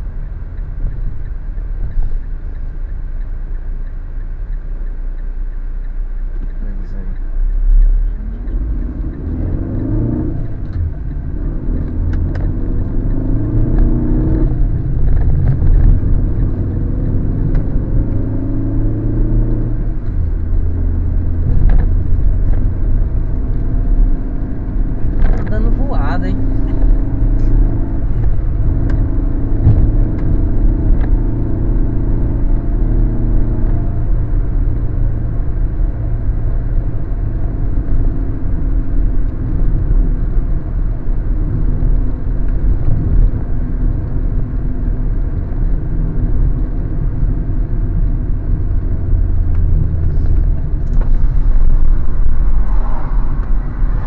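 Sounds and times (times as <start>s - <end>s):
car engine accelerating: 0.0s - 54.0s
road noise inside car: 0.0s - 54.0s.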